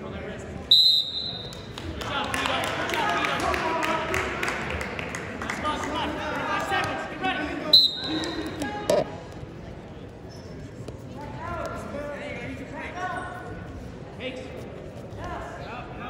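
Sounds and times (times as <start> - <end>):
referee's whistle blast: 0.7 - 1.5, 7.7 - 8.6.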